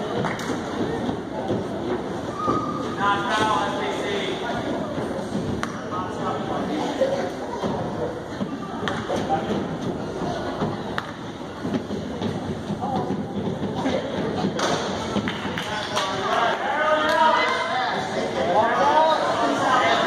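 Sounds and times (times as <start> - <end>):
spectators' voices: 0.0 - 20.0.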